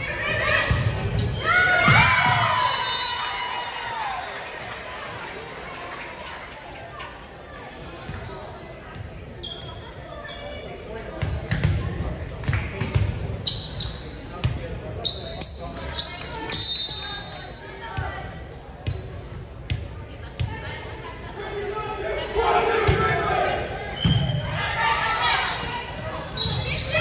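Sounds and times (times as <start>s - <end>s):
players' voices: 0.0s - 27.0s
sneaker squeaks: 0.7s - 1.4s, 8.1s - 11.7s, 12.7s - 17.5s, 18.8s - 19.8s, 23.9s - 24.6s, 25.4s - 27.0s
ball bouncing on gym floor: 11.2s - 11.8s.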